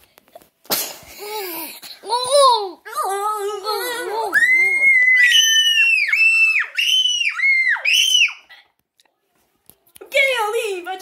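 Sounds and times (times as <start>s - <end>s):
child screaming: 4.3s - 8.5s.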